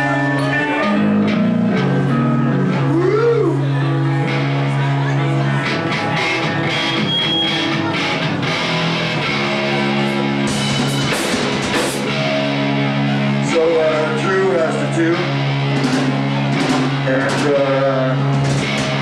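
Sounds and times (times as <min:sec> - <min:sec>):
electric guitars sustained notes: 0:00.0 - 0:19.0
drums with cymbal hits: 0:09.4 - 0:13.4, 0:15.2 - 0:19.0.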